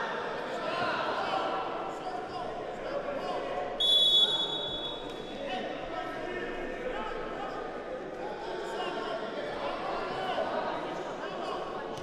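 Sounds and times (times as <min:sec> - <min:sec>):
voices in a hall: 0:00.0 - 0:12.0
referee's whistle blast: 0:03.8 - 0:05.0.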